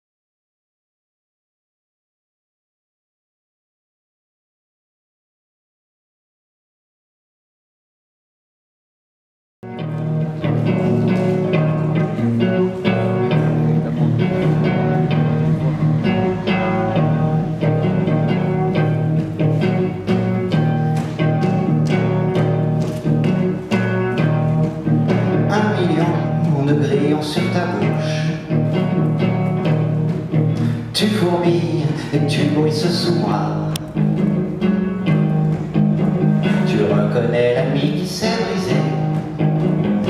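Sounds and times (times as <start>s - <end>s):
electric guitar picked notes: 9.6s - 40.0s.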